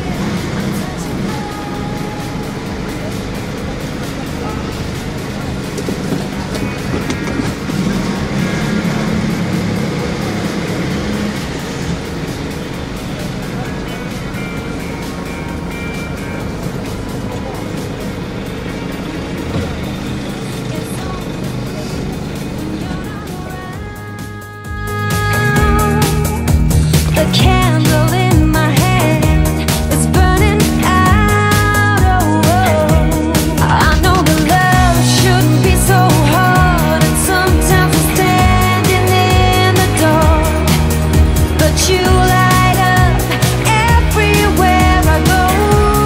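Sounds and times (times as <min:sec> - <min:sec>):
music: 0:00.0 - 0:46.0
van engine running: 0:00.0 - 0:46.0.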